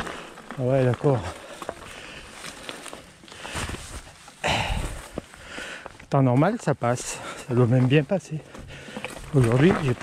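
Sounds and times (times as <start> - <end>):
bike handling scuffs and clicks: 0.0 - 4.4.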